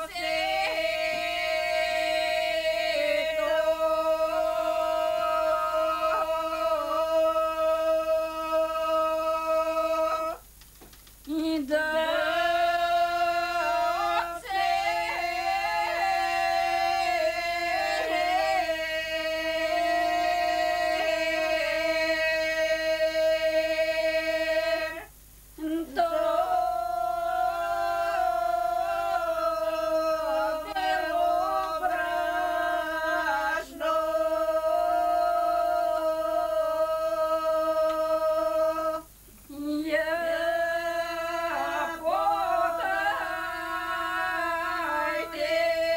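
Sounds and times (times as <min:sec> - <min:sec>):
women singing unaccompanied: 0:00.0 - 0:10.5, 0:11.2 - 0:45.9.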